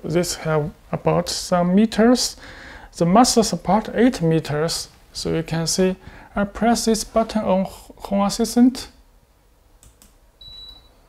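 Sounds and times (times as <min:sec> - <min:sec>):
air conditioner short high beep: 0:10.4 - 0:11.0.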